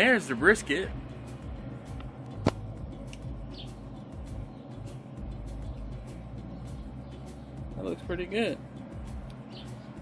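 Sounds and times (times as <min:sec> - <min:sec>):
pellet grill humming: 0:00.0 - 0:10.0.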